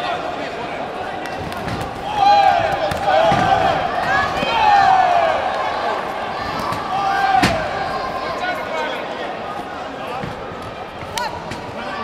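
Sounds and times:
voices shouting in a hall: 0:00.0 - 0:12.0.

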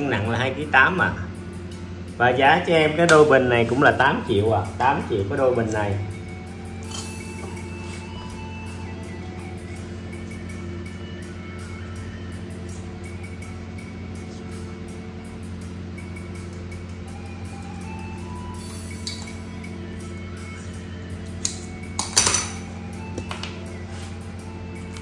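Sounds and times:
soft background music: 0:00.0 - 0:25.0.

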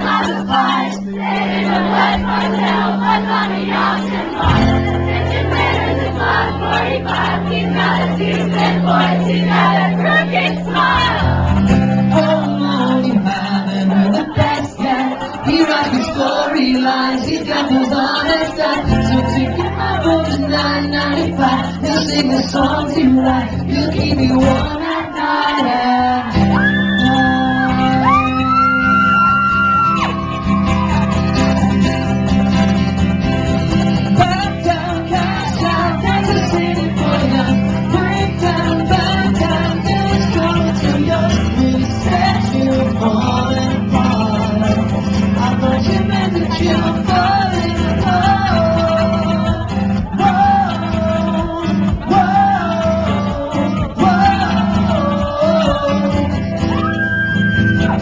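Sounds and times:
audience singing along: 0:00.0 - 0:28.3, 0:34.0 - 0:56.7
acoustic guitar: 0:00.0 - 0:58.0.

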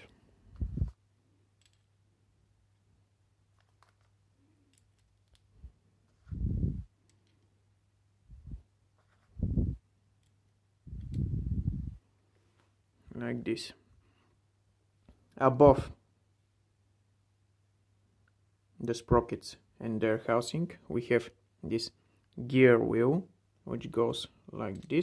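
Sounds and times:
small clicks of steel parts: 0:01.5 - 0:02.0, 0:03.5 - 0:05.5, 0:07.0 - 0:07.6, 0:10.1 - 0:11.2, 0:24.6 - 0:25.0.

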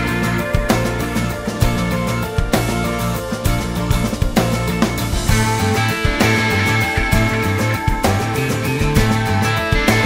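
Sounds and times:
rock band instrumental: 0:00.0 - 0:10.0.

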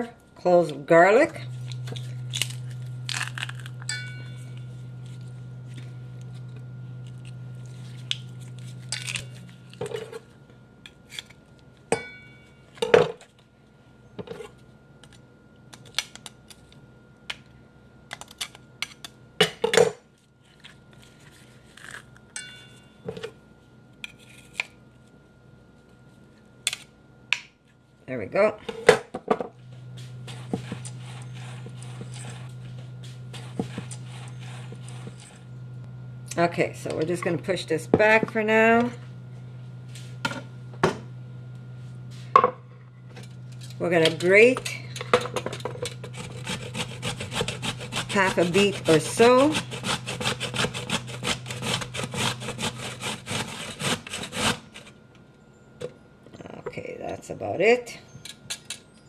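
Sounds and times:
low hum: 0:00.0 - 0:19.6, 0:20.2 - 0:57.4.

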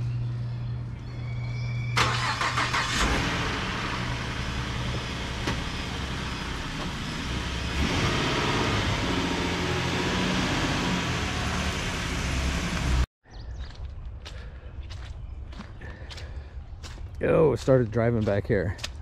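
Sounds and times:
truck engine cranking and idling: 0:01.5 - 0:13.1.

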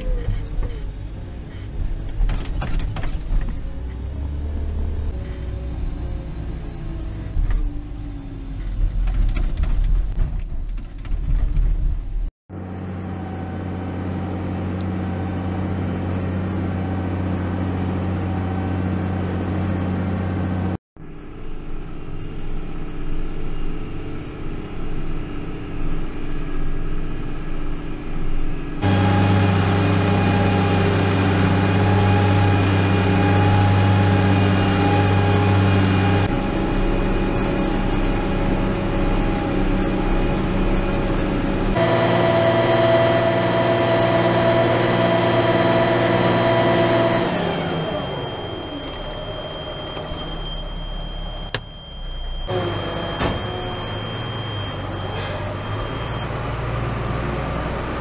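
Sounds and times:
tractor engine rumbling: 0:00.0 - 0:58.0.

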